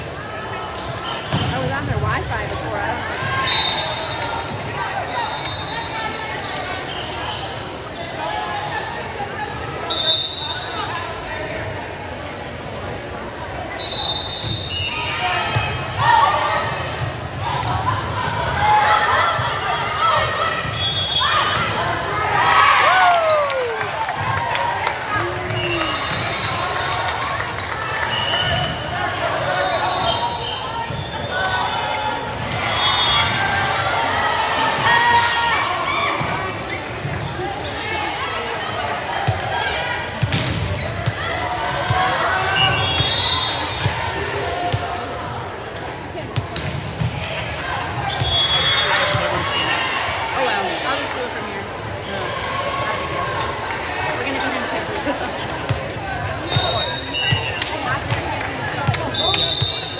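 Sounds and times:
chatter of voices: 0.0s - 9.9s, 43.6s - 59.9s
sneakers squeaking on court: 0.5s - 4.1s, 19.3s - 22.4s, 36.2s - 37.8s, 38.6s - 44.9s, 45.6s - 49.7s.

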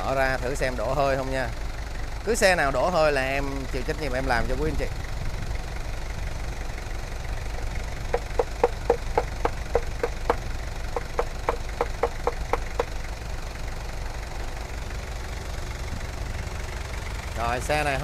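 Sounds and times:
diesel engine idling: 0.0s - 18.0s
sharp evenly spaced clicks: 7.5s - 13.0s.

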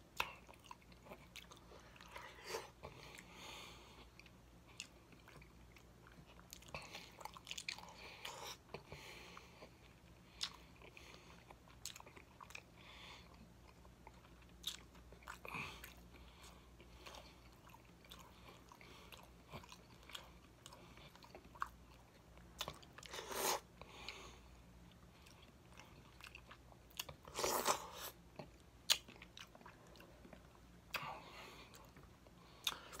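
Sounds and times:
person chewing food: 0.0s - 33.0s.

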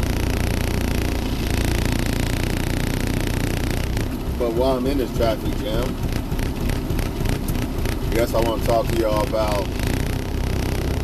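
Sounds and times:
vehicle engine rumbling: 0.0s - 11.0s.

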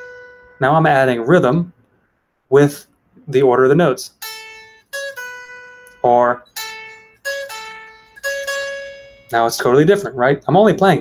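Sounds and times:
electric guitar picking notes: 0.0s - 1.6s, 4.1s - 10.2s.

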